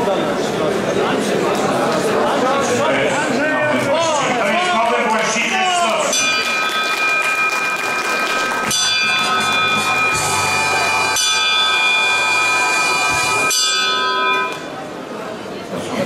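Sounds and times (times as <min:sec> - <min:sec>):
ship's bell clanging: 0:05.9 - 0:15.0.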